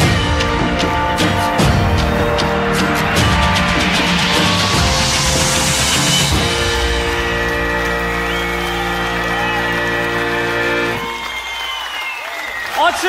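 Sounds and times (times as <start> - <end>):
audience applauding: 1.8 - 13.0.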